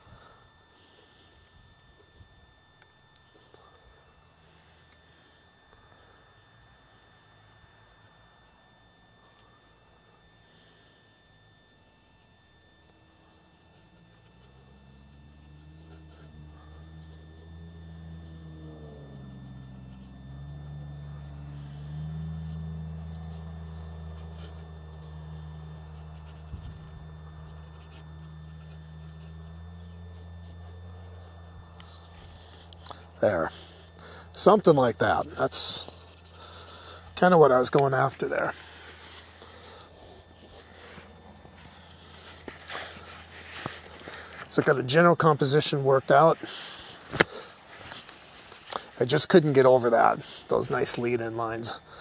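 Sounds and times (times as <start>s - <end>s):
low droning hum: 0.0s - 52.0s.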